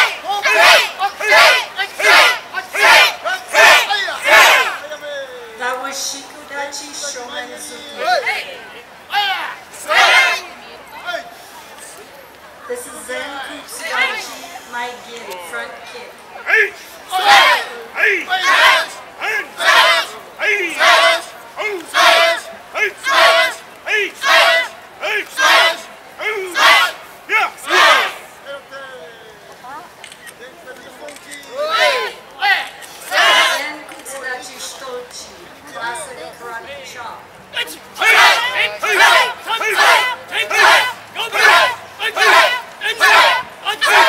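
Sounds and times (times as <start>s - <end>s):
group shouting in unison: 0.0s - 4.8s, 9.1s - 10.5s, 16.5s - 28.2s, 31.7s - 33.7s, 37.6s - 44.0s.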